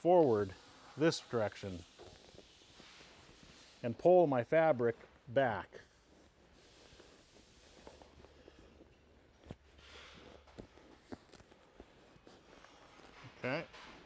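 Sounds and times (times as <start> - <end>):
rustling of vinyl cushion cover: 0.0 - 14.0.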